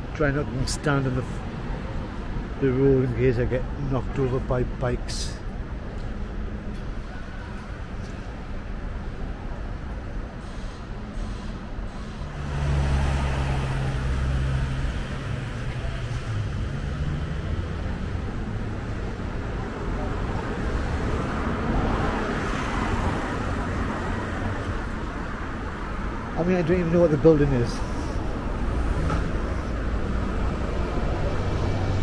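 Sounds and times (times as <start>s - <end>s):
cars driving past: 5.2s - 32.0s.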